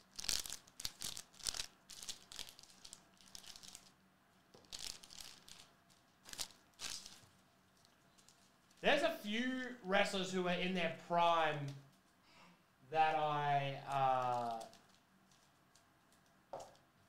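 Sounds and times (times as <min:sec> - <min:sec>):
foil wrapper tearing and crinkling: 0:00.0 - 0:04.0, 0:04.6 - 0:08.9, 0:14.0 - 0:15.6.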